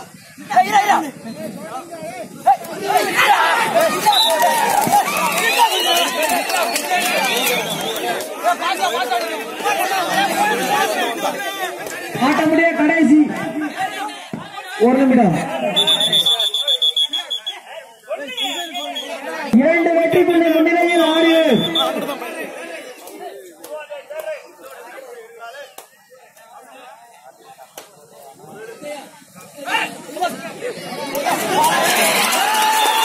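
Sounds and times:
crowd voices: 0:00.0 - 0:33.0
referee's whistle blast: 0:15.6 - 0:19.3, 0:21.0 - 0:22.0.

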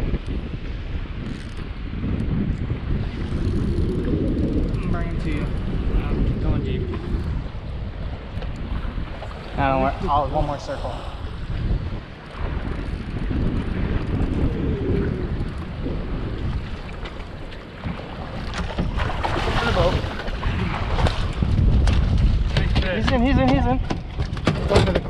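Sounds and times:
water washing along boat hull: 0:00.0 - 0:25.0
wind buffeting microphone: 0:00.0 - 0:25.0.

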